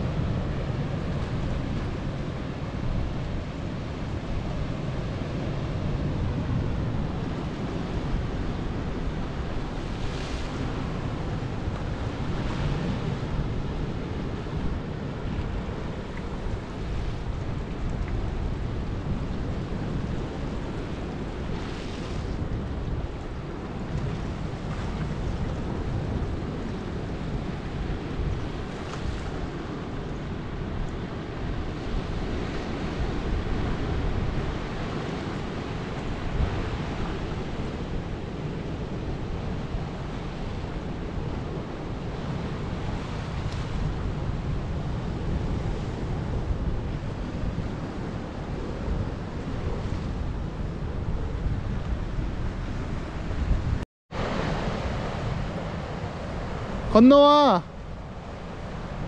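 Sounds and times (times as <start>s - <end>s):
wind buffeting microphone: 0.0s - 56.9s
ocean surf washing over rocks: 0.0s - 59.0s.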